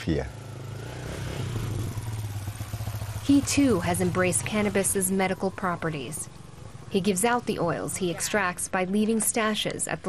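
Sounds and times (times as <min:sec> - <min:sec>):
small motorcycle engine running: 0:00.0 - 0:08.6.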